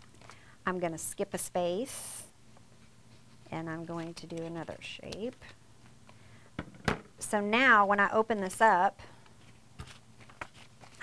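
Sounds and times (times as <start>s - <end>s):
paper rustling: 9.4s - 11.0s.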